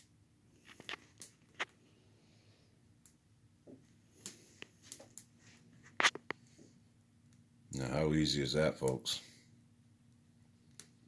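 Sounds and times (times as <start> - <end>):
fire crackling and popping: 0.0 - 1.9, 2.9 - 7.5, 10.1 - 11.0.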